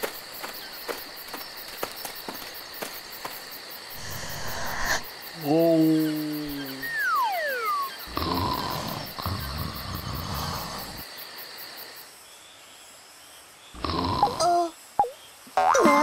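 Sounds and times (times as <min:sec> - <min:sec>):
chirping insects: 0:00.0 - 0:16.0
falling whistle-like glides: 0:06.8 - 0:08.0.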